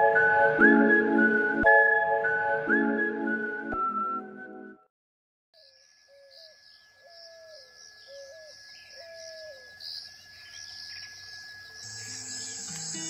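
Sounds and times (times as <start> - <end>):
insects chirping: 5.6 - 13.0.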